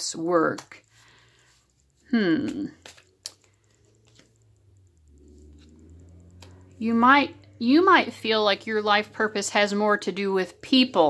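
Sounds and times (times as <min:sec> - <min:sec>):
card clicking on cards: 0:02.2 - 0:06.6.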